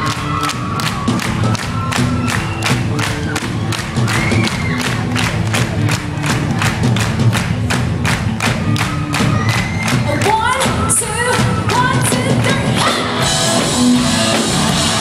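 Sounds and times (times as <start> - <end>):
crowd cheering: 0.0 - 15.0
live pop concert music: 0.0 - 15.0.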